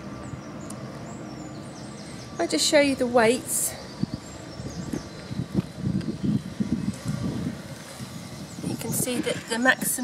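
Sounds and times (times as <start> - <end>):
distant bird chirps: 0.0 - 10.0
outdoor background noise: 0.0 - 10.0.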